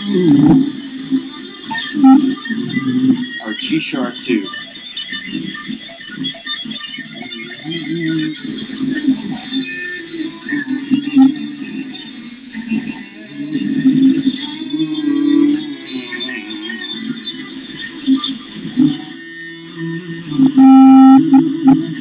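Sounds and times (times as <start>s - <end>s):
electric guitar lead lines: 16.3s - 22.0s.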